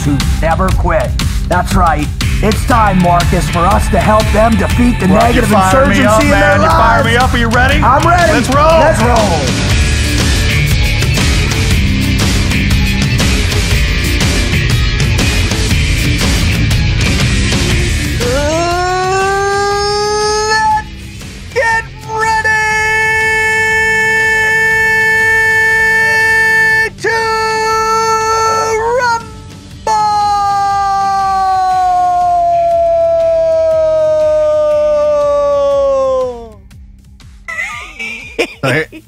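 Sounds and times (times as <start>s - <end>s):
man yelling a long high note: 3.6s - 9.7s, 21.6s - 36.6s.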